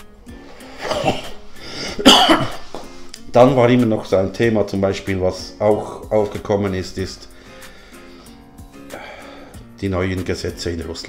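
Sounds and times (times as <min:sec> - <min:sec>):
man coughing: 0:00.8 - 0:02.7.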